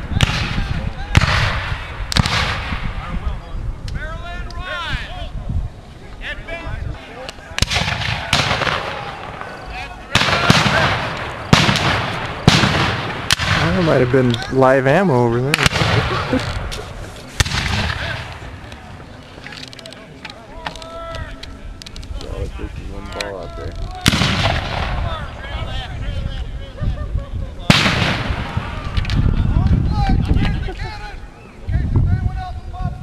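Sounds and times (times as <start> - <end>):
musket shots echoing: 0.2 - 2.9, 7.6 - 14.3, 15.5 - 16.3, 17.4 - 18.5, 24.0 - 25.1, 27.7 - 28.8.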